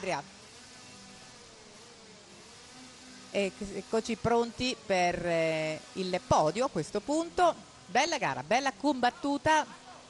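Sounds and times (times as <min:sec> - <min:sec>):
distant kart engines buzzing: 0:00.0 - 0:10.0.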